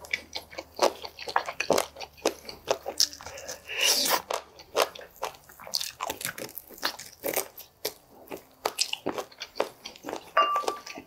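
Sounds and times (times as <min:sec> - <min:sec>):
chewing crunchy chicken wing: 0:00.0 - 0:11.0.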